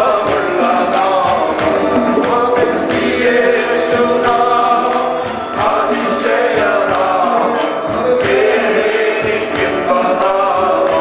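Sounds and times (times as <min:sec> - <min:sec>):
keyboard: 0:00.0 - 0:11.0
men singing worship song: 0:00.0 - 0:11.0
steady beat: 0:00.0 - 0:11.0.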